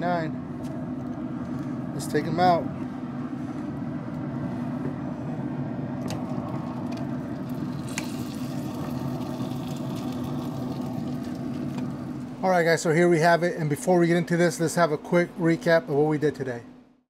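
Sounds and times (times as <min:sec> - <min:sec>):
grill fan humming: 0:00.0 - 0:17.0.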